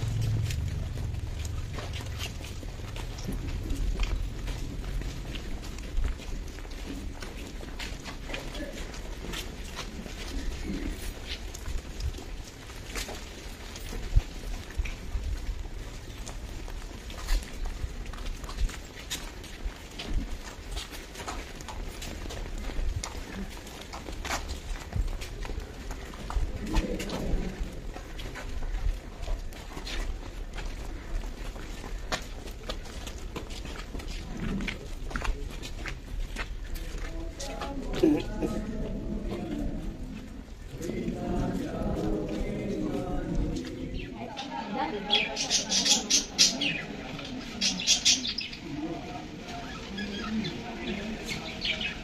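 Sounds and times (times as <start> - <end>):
crowd footsteps on a path: 0.0 - 52.0
murmur of voices: 36.6 - 52.0
birds chirping: 43.8 - 52.0.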